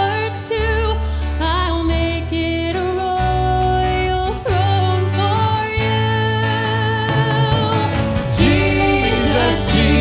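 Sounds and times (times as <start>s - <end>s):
band accompaniment: 1.8s - 10.0s.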